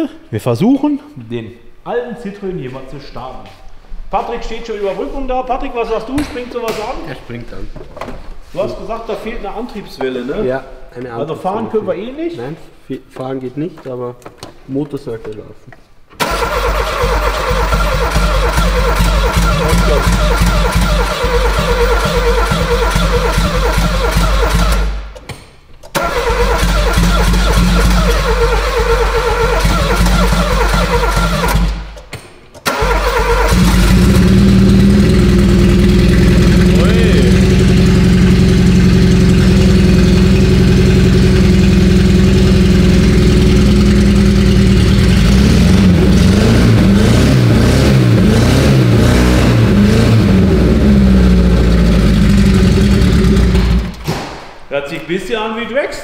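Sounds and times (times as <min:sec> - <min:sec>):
car engine starting and running: 0:16.2 - 0:25.3, 0:25.9 - 0:54.2.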